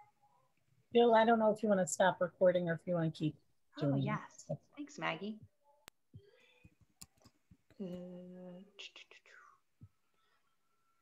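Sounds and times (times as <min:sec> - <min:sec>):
faint breathy whisper: 0:07.8 - 0:11.0.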